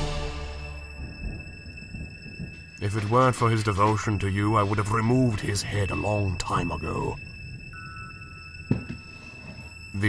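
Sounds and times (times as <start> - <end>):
high-pitched electronic drone: 0.0 - 10.0.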